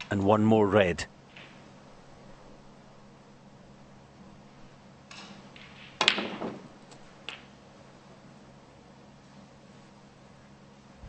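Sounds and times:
snooker balls clicking: 0:05.1 - 0:07.6.

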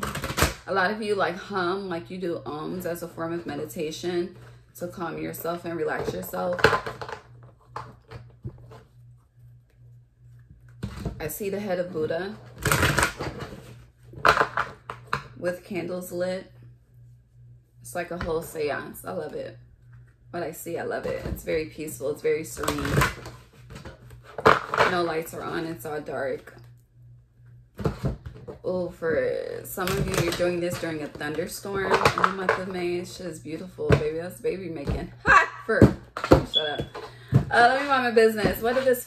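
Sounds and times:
low steady hum: 0:00.0 - 0:39.0
woman speaking: 0:00.6 - 0:06.8, 0:11.2 - 0:12.4, 0:15.4 - 0:16.6, 0:17.8 - 0:19.6, 0:20.3 - 0:23.2, 0:24.8 - 0:26.6, 0:28.6 - 0:39.0.

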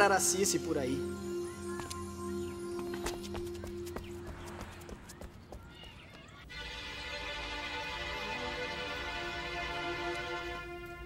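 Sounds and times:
music of held tones: 0:00.0 - 0:04.6
quiet background music: 0:00.0 - 0:05.6, 0:06.4 - 0:11.0
footsteps walking away: 0:02.8 - 0:06.5.

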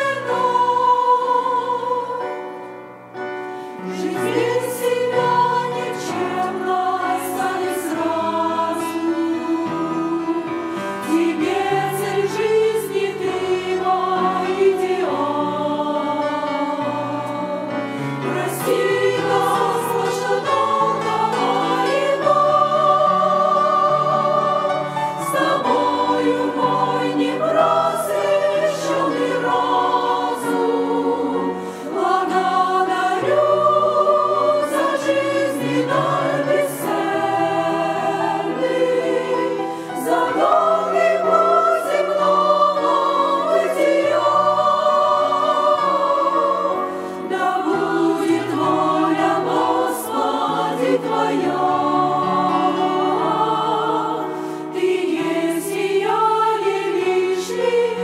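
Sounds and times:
women's choir singing a hymn: 0:00.0 - 0:58.0.

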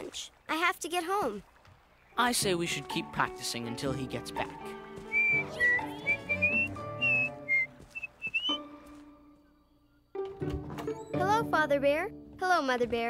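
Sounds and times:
soft background music: 0:02.2 - 0:13.0
whistling a tune: 0:05.0 - 0:10.2.

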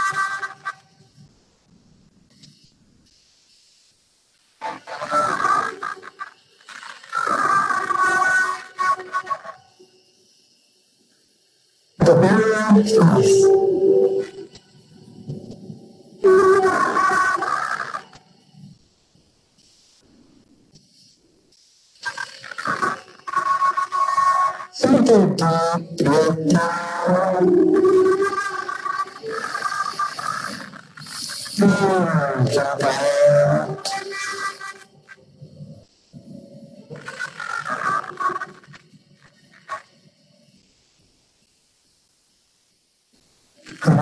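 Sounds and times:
voice chanting in long notes: 0:12.0 - 0:14.5, 0:31.6 - 0:34.4
steady pitched tones: 0:12.0 - 0:17.1.

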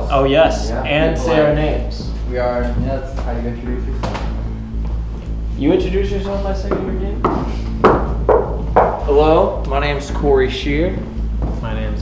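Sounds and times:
knuckles knocking on wood: 0:06.7 - 0:09.1.

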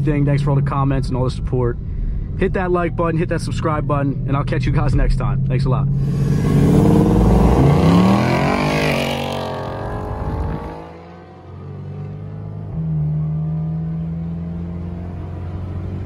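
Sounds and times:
car engine revving: 0:05.8 - 0:16.0
car engine drone inside car: 0:05.9 - 0:08.6.

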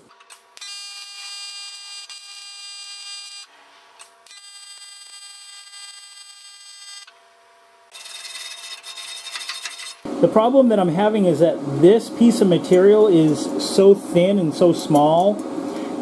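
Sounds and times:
welding arc buzzing: 0:00.0 - 0:10.3.

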